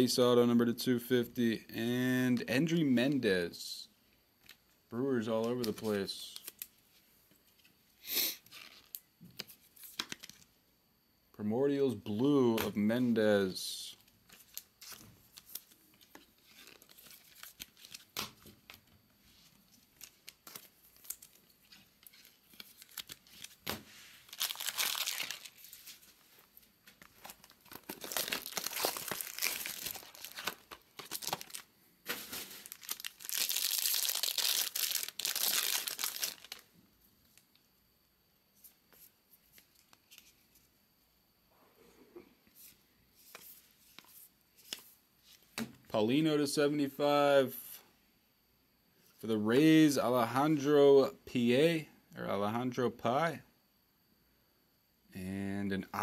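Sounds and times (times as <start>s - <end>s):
card pack wrappers tearing: 14.4s - 18.5s, 19.9s - 26.1s, 27.0s - 36.7s
cards clicking and rustling: 26.9s - 36.6s.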